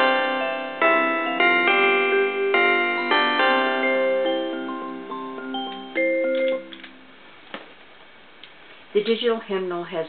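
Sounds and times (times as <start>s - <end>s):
digital hymnal keyboard chord: 0.0s - 7.4s.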